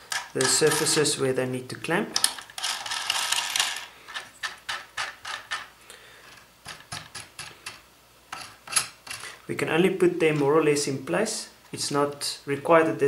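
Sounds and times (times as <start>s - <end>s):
nuts scraping on threaded rods: 0.0s - 1.1s, 2.2s - 9.4s
metallic clicks and rattles: 6.3s - 9.4s.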